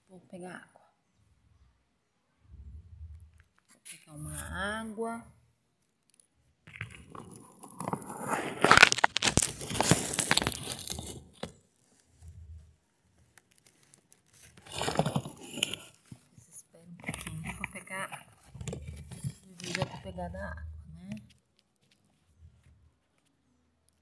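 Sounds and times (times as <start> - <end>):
rustling handling noise: 5.8 - 20.4.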